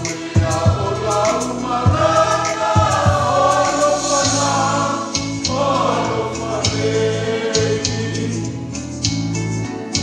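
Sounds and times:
choir singing a hymn: 0:00.0 - 0:08.8.

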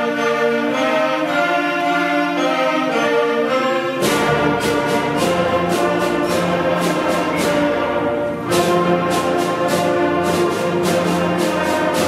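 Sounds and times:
concert band playing: 0:00.0 - 0:12.0
percussion strokes: 0:00.0 - 0:12.0.

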